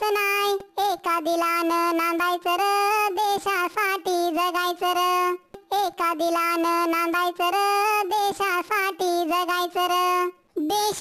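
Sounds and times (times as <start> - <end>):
high cartoon-like voice singing: 0.0 - 11.0.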